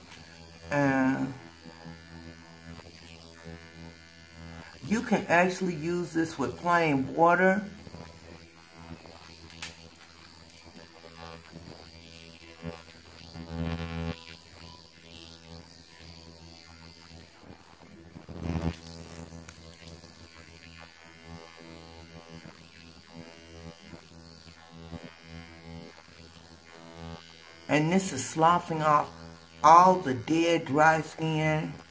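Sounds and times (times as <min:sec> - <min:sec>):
facial scrubber buzzing: 0:00.0 - 0:31.9.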